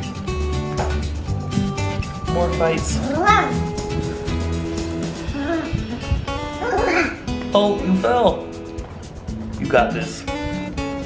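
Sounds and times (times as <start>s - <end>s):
background music: 0.0s - 11.0s.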